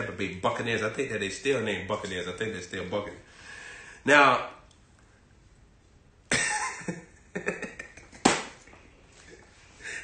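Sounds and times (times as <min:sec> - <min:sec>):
man laughing hard: 0:06.3 - 0:08.3.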